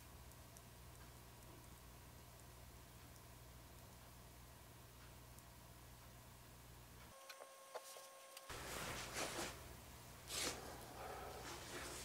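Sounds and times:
hands rustling and scraping: 0:07.8 - 0:09.6, 0:11.4 - 0:12.0.

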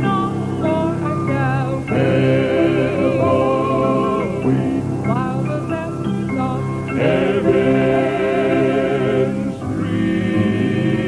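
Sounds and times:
vocal quartet singing in harmony: 0:00.0 - 0:11.0.

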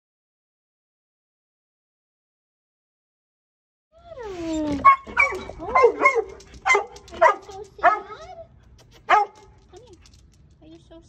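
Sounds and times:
dog whining: 0:04.0 - 0:09.4
dog barking and yelping: 0:04.1 - 0:09.6.

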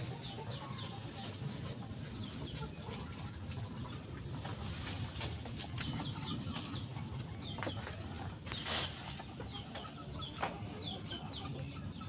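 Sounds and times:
birds chirping: 0:00.0 - 0:12.0.

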